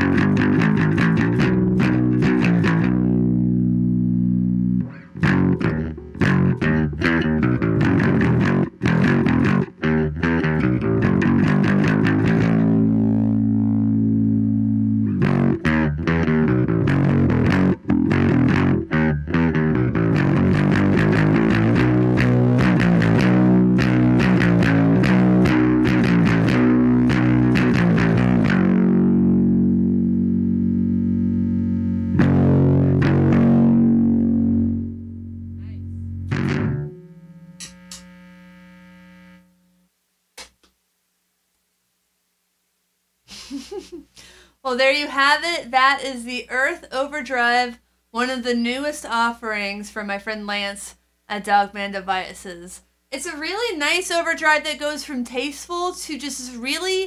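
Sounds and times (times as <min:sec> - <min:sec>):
overdriven electric bass line: 0:00.0 - 0:39.8.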